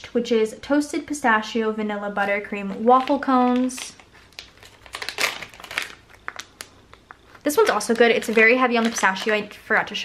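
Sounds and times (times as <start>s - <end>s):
plastic bag crinkling: 2.2s - 10.0s.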